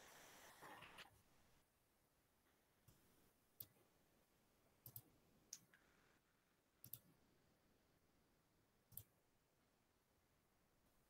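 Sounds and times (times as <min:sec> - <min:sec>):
computer mouse clicks: 0:04.8 - 0:05.8, 0:06.8 - 0:07.1.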